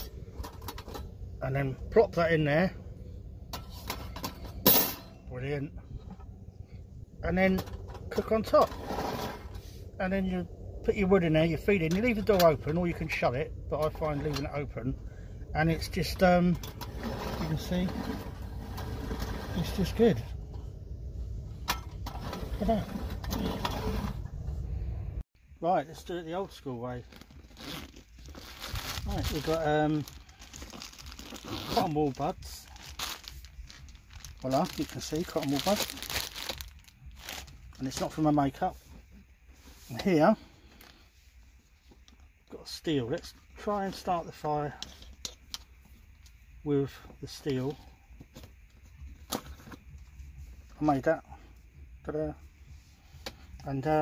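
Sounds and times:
steady low rumble: 0.0s - 54.0s.

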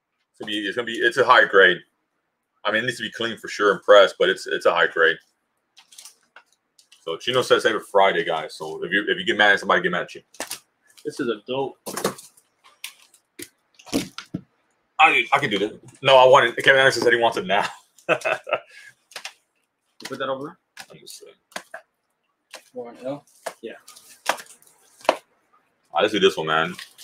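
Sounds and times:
comic books and boxes handled: 5.8s - 7.5s, 10.2s - 11.2s, 11.8s - 14.5s, 22.5s - 25.3s, 26.6s - 27.0s.

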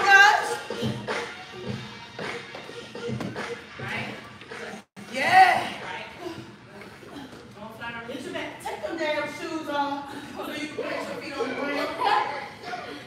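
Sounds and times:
music with vocals: 0.0s - 4.9s.

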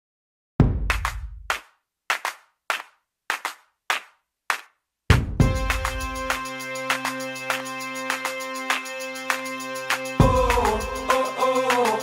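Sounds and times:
dry percussion hits: 5.1s - 11.1s.

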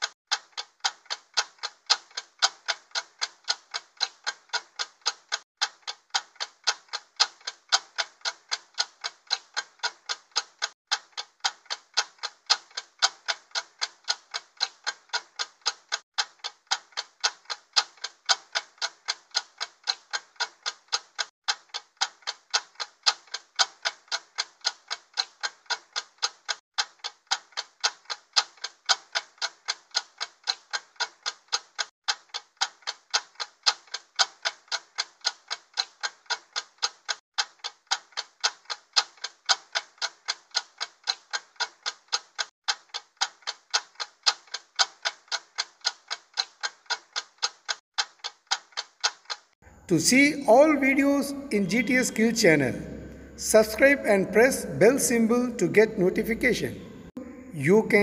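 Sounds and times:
stopwatch ticking: 0.0s - 58.0s.

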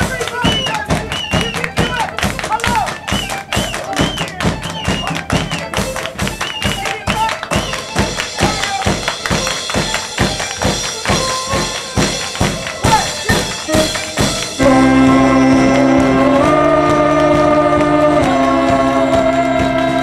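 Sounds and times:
fast percussive beat: 0.0s - 20.0s
live band playing upbeat song: 0.0s - 20.0s
voices singing: 12.8s - 20.0s.

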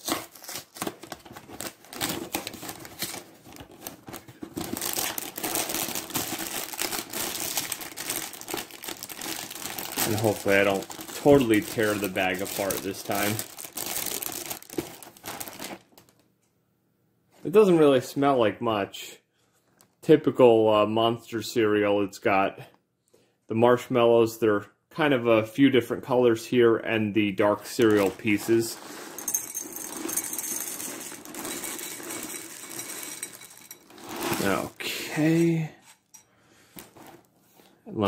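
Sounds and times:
plastic bag crinkling: 0.0s - 16.2s, 27.7s - 35.4s
cereal pouring into ceramic bowl: 5.4s - 13.4s, 27.8s - 34.8s.

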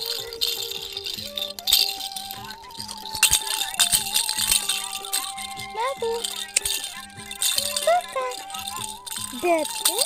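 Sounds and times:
background music: 0.0s - 10.0s
toy rattle shaken: 0.0s - 10.0s.

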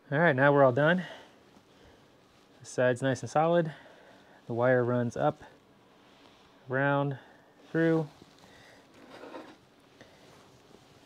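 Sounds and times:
soft handling rustle: 0.6s - 11.0s.

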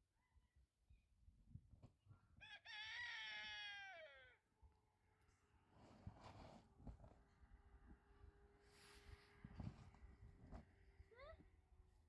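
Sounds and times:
rooster crowing: 2.4s - 4.4s.

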